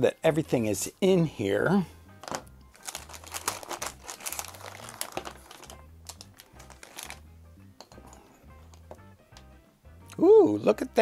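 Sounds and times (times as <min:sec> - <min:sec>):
plastic packaging crinkling: 0:02.2 - 0:07.2.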